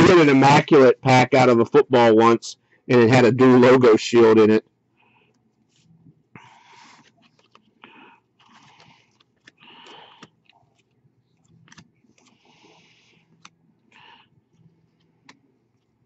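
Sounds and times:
cards sliding and rustling: 0:06.6 - 0:13.6.

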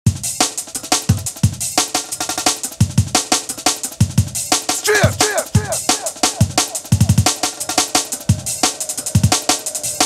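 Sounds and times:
drum and bass breakbeat: 0:00.1 - 0:10.0
deep kick drums dropping in pitch: 0:04.0 - 0:07.3.

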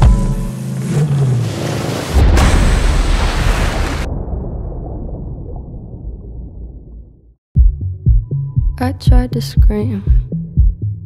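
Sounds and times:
car engine accelerating: 0:00.0 - 0:02.1.

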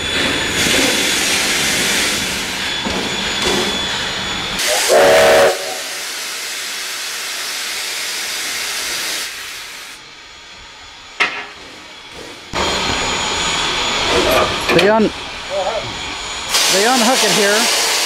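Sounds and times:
steam locomotive hissing: 0:00.0 - 0:18.0
steam whistle blast: 0:04.6 - 0:06.3.

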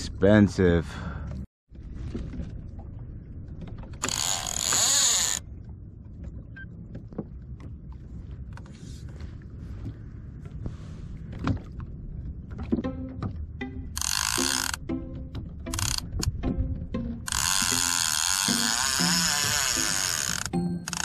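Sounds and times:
water and wind rumble: 0:00.0 - 0:21.0
fishing reel whirring and clicking: 0:04.0 - 0:05.4, 0:14.0 - 0:14.8, 0:15.7 - 0:16.3, 0:17.2 - 0:21.0.

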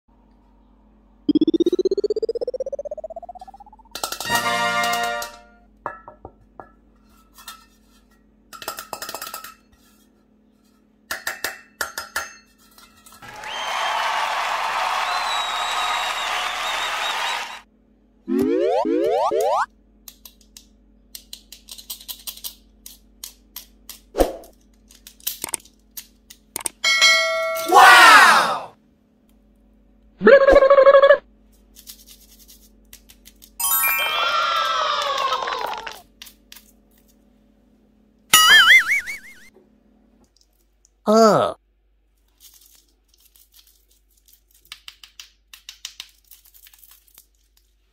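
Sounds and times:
rising boing: 0:01.3 - 0:03.9
bell ding: 0:26.9 - 0:27.7, 0:33.6 - 0:34.2
shimmering sparkle effect: 0:33.6 - 0:34.3
chimes falling in pitch: 0:33.6 - 0:34.8.

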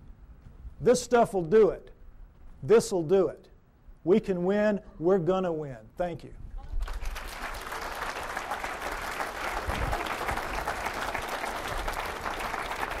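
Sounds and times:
audience applauding: 0:06.8 - 0:13.0.

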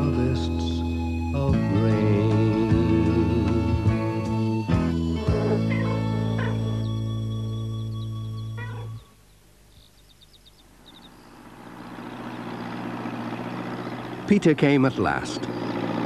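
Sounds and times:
tractor engine approaching: 0:00.0 - 0:16.0
cat meowing: 0:05.6 - 0:06.7, 0:08.6 - 0:09.0.

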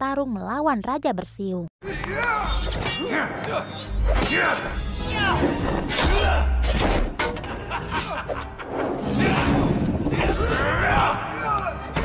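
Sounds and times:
dramatic music: 0:01.8 - 0:12.0.

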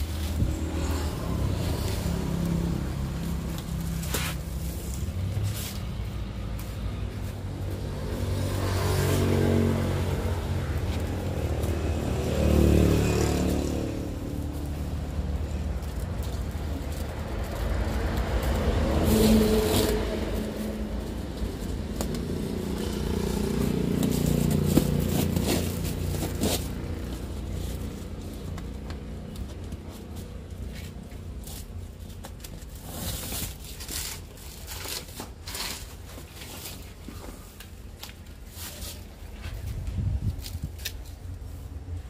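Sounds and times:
vehicle engine: 0:00.0 - 0:42.0.

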